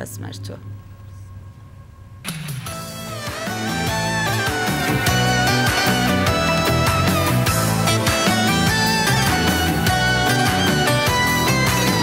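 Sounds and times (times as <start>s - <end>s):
low steady hum: 0.0s - 6.3s
loud concert music: 2.3s - 12.0s.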